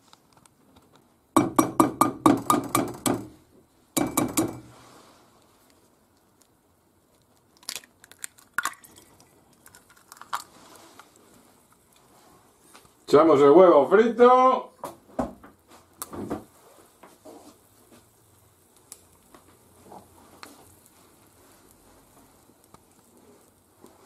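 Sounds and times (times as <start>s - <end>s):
egg cracking: 6.1s - 12.1s.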